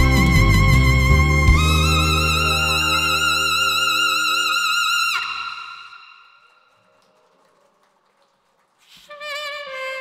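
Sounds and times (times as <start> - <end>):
backing track: 0.0 - 6.1.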